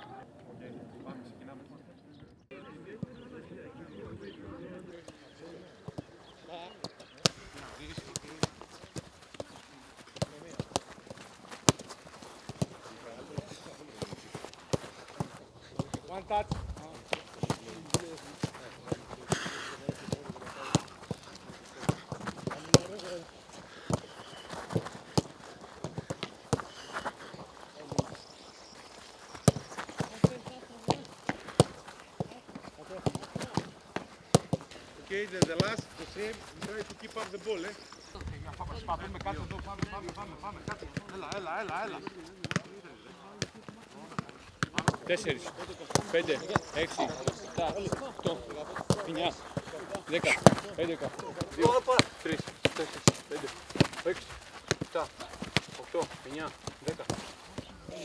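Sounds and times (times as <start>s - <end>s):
boots kicking footballs: 5.0s - 58.0s
running footsteps: 5.0s - 58.0s
players shouting: 44.7s - 58.0s.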